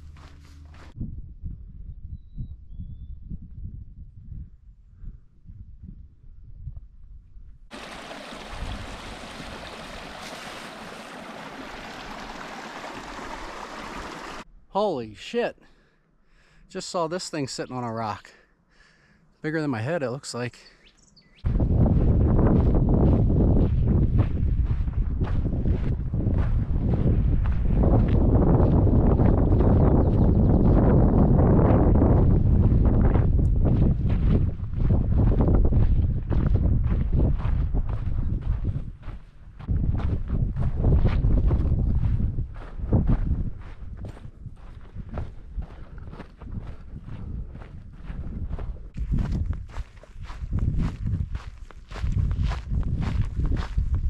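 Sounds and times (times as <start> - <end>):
footsteps on dry dirt trail: 0.0 - 1.0, 7.7 - 12.4, 21.4 - 54.0
wind buffeting microphone: 0.9 - 11.0, 21.4 - 54.0.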